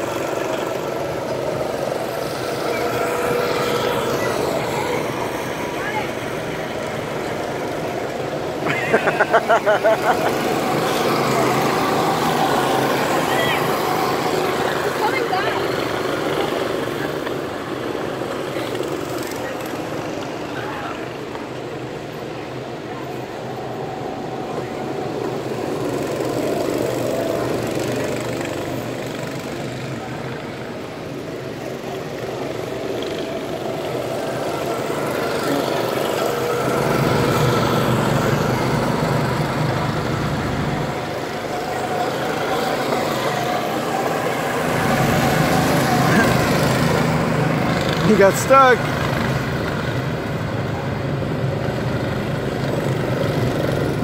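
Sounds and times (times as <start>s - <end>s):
go-kart engines droning: 0.0s - 54.0s.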